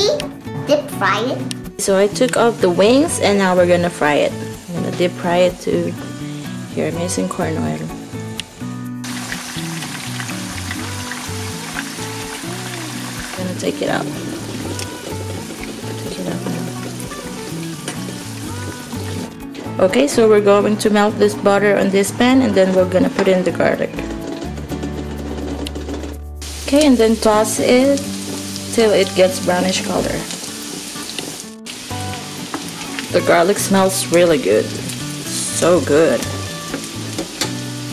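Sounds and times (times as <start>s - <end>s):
background music: 0.0s - 37.9s
chicken wings sizzling in oil: 1.8s - 8.4s, 9.0s - 23.7s, 26.4s - 37.9s.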